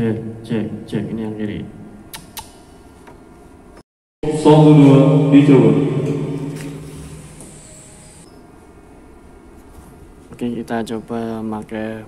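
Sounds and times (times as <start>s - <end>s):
amplified voice through speakers: 0.0s - 1.7s, 4.2s - 6.8s
thin high whine: 4.2s - 9.2s.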